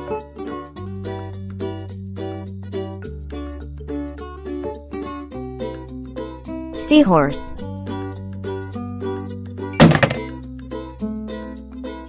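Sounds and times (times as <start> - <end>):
loud thunk: 9.8 - 10.3.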